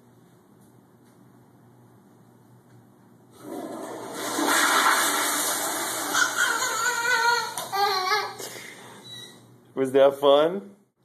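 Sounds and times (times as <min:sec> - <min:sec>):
toilet flushing: 0:03.3 - 0:07.5.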